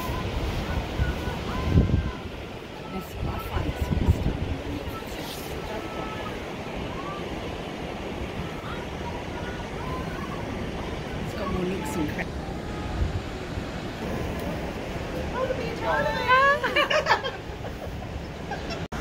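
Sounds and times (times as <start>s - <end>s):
faint voices chatting: 0.0s - 19.0s
wind buffeting microphone: 0.0s - 19.0s.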